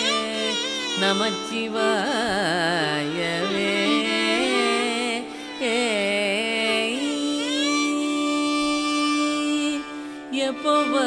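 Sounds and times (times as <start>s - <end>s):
man singing long notes: 0.1s - 8.9s.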